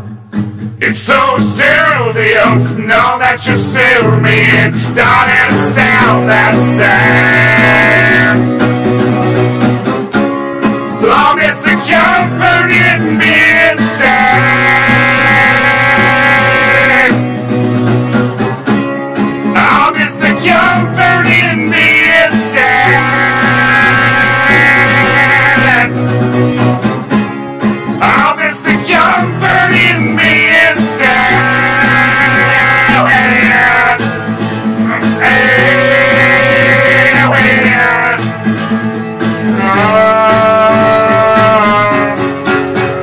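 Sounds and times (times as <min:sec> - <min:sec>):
acoustic guitar music: 0:00.0 - 0:43.0.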